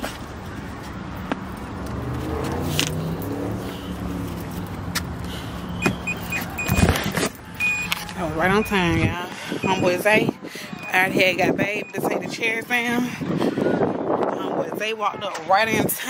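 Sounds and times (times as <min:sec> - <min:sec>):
short high beeps: 0:05.8 - 0:06.9, 0:07.6 - 0:10.0, 0:10.8 - 0:12.1.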